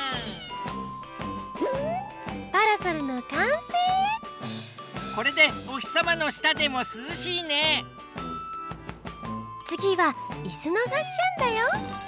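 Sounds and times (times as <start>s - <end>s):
bouncy background music: 0.0s - 12.0s.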